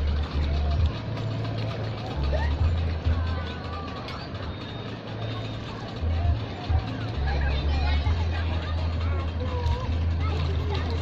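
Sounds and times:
faint voices: 0:00.0 - 0:11.0.

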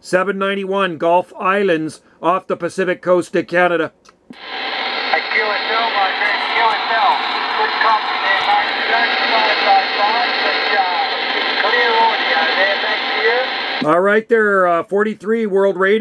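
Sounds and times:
static hiss: 0:04.3 - 0:13.9
voice over radio receiver: 0:04.4 - 0:14.0.

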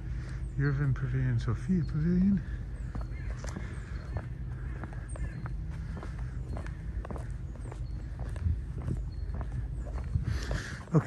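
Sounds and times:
low outdoor background rumble: 0:00.0 - 0:11.0
footsteps on stone paving: 0:02.0 - 0:11.0.

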